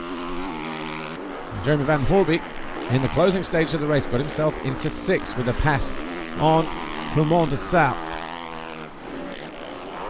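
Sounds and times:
motorbike engine running: 0.0s - 10.0s.

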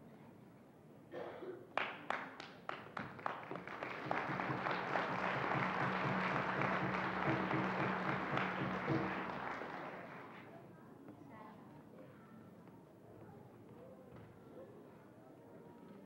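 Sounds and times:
audience applause: 2.7s - 10.5s
frame drum beats: 4.0s - 9.8s.

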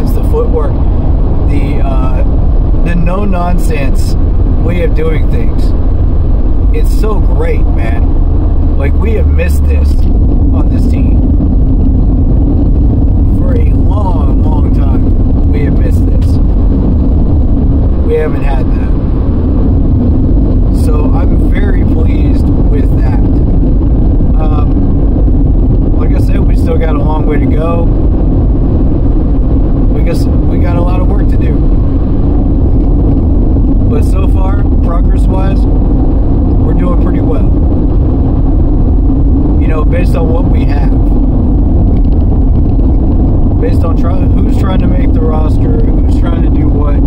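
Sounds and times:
man talking: 0.0s - 5.7s, 6.7s - 8.2s, 8.8s - 11.3s, 13.3s - 16.5s, 18.0s - 19.0s, 20.7s - 23.4s, 24.3s - 24.9s, 26.0s - 27.9s, 29.9s - 31.7s, 33.8s - 35.6s, 36.6s - 37.6s, 39.6s - 41.2s, 43.6s - 47.0s
car engine and tyres rumbling: 0.0s - 47.0s.

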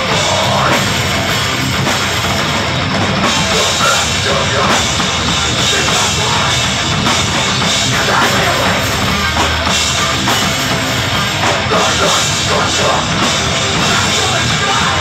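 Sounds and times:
bass guitar: 0.0s - 15.0s
distorted electric guitars: 0.0s - 15.0s
drum kit: 0.0s - 15.0s.

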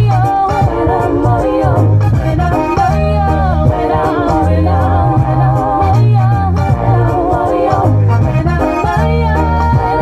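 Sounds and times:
backing music with bass line: 0.0s - 10.0s
woman singing gospel: 0.0s - 10.0s.

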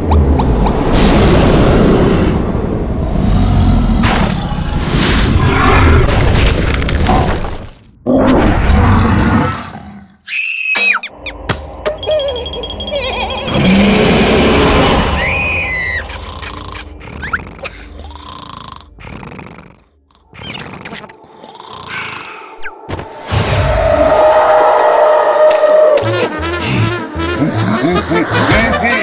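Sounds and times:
squeaky gliding cartoon sounds: 10.3s - 18.3s, 20.1s - 22.8s.

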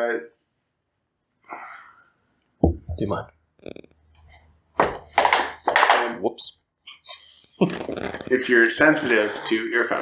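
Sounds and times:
crinkling handling noise: 7.6s - 10.0s.

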